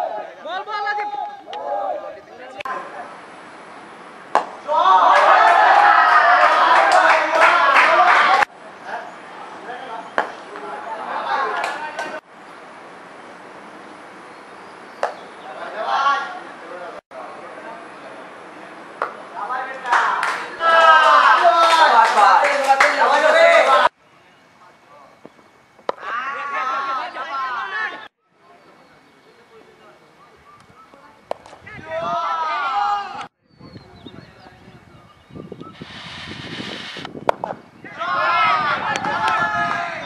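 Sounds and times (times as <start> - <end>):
players shouting: 0.0 - 3.0, 4.3 - 8.5, 19.2 - 24.0, 25.9 - 28.1, 31.6 - 33.3, 37.8 - 40.0
voices talking: 0.0 - 12.3, 15.0 - 40.0
cricket bat hitting ball: 4.3 - 4.7, 10.2 - 10.4, 15.0 - 15.2, 25.8 - 26.1
spectators clapping: 5.1 - 8.5, 19.8 - 23.9.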